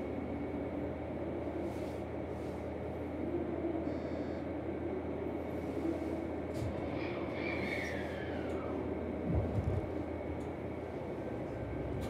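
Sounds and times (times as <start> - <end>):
electric train hum: 0.0 - 12.0.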